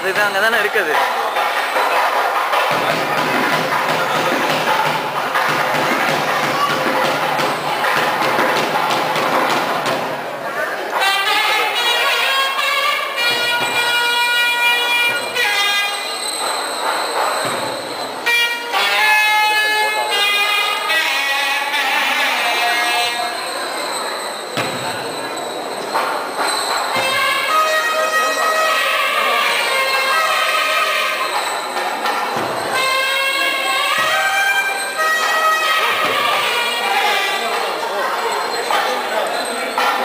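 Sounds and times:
crowd noise: 0.0 - 40.0
double-reed wind instrument: 10.8 - 24.2, 26.0 - 38.4.

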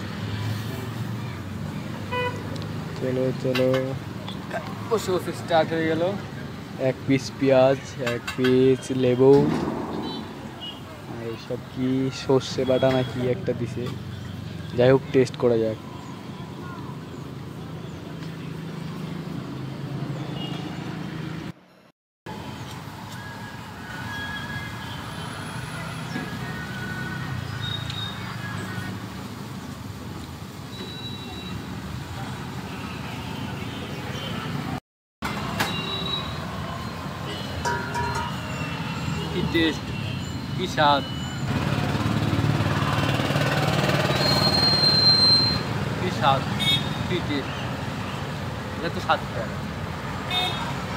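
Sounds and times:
traffic noise: 0.0 - 50.9.

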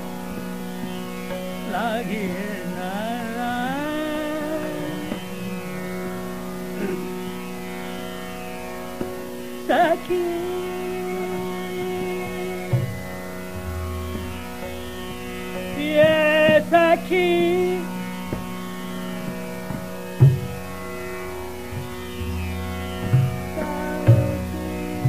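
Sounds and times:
steady drone: 0.0 - 25.0
man singing classical vocal: 1.5 - 5.8, 6.7 - 7.3, 9.6 - 13.2, 15.5 - 18.1, 23.5 - 25.0.

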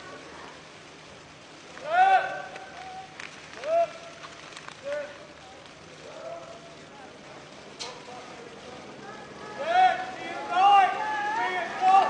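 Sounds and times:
outdoor background noise: 0.0 - 12.0
people shouting drawn-out calls: 9.1 - 12.0.

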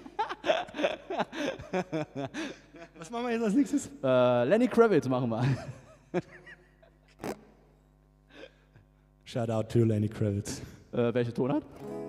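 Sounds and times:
faint steady hum: 0.0 - 12.0
laughing breath: 0.4 - 3.0.

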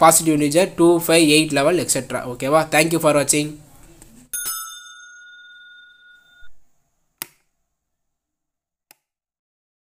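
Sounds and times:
bell chime ding: 4.3 - 6.6.

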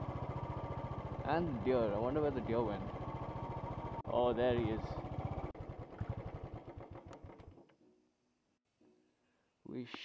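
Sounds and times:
motorcycle engine idling: 0.0 - 7.6.

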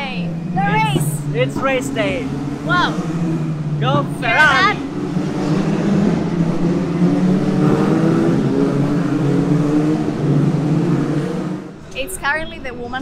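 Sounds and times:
race car engines droning: 0.0 - 13.0.

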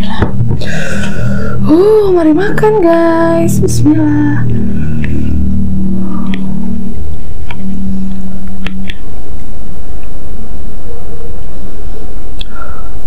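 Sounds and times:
low steady rumble: 0.0 - 12.7.

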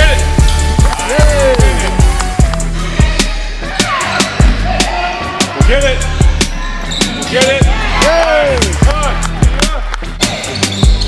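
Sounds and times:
sneakers squeaking: 3.2 - 4.7, 6.0 - 7.6, 10.0 - 11.0.

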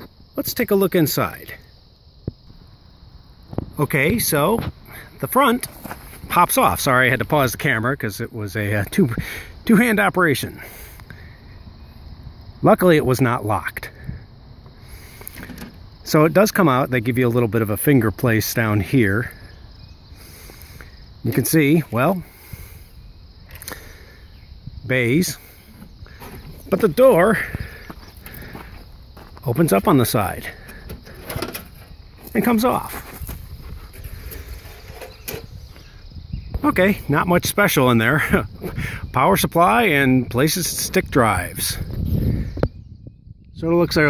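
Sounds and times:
distant highway traffic rumble: 0.0 - 42.9
outdoor background noise: 0.0 - 44.0.

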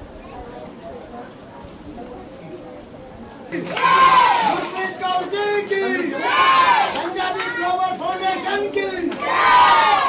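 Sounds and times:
crowd talking and calling out: 0.0 - 10.0
drawn-out shout: 3.6 - 10.0.

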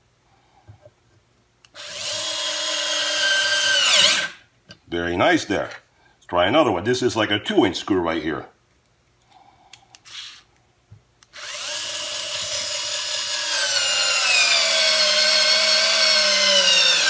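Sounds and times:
cordless screwdriver motor whine: 11.3 - 17.0.

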